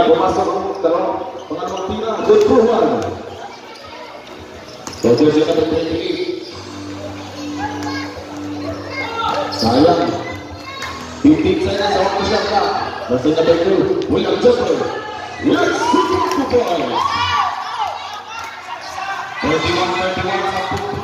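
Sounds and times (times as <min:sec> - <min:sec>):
crowd voices: 0:00.0 - 0:21.0.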